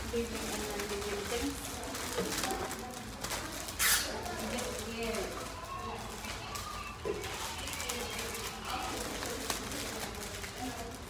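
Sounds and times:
loud plastic crinkle: 0.0 - 11.0
plastic bags and paper rustling: 0.0 - 11.0.

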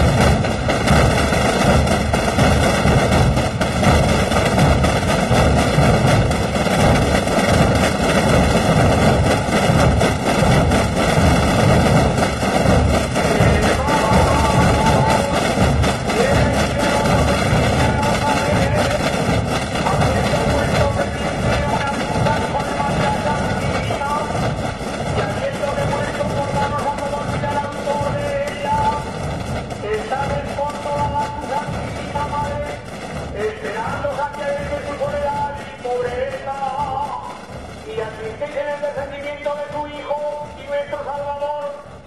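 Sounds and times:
massed drum roll: 0.0 - 42.0.

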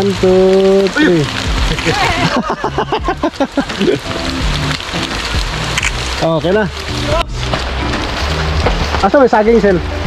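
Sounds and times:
rain hissing: 0.0 - 10.0
people calling excitedly: 0.8 - 4.2.

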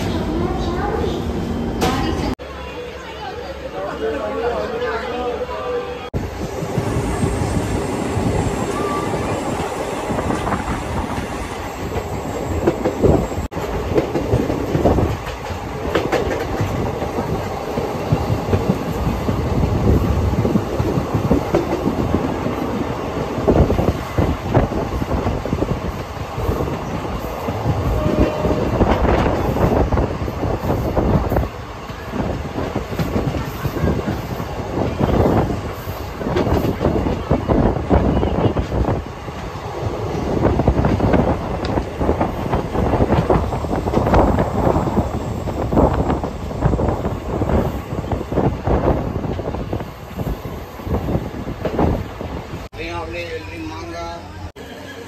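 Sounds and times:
train wheels rumbling on rails: 6.1 - 55.0
knocks and clatter of train coach: 9.6 - 22.8, 23.4 - 52.7.

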